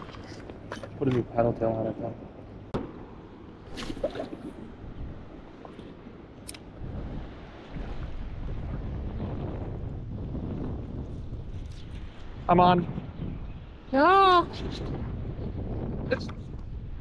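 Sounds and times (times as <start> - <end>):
river water lapping: 0.0 - 9.6
wind buffeting microphone: 0.0 - 17.0.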